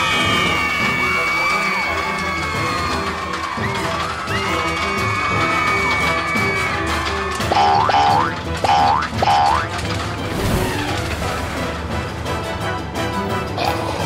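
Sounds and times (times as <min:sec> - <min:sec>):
cartoon background music: 0:00.0 - 0:14.0
rising boing sound effects: 0:07.5 - 0:09.7.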